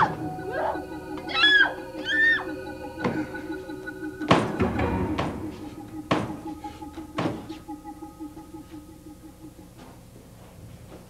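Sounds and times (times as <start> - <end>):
low musical drone: 0.0 - 10.6
sharp knocks: 6.1 - 6.5.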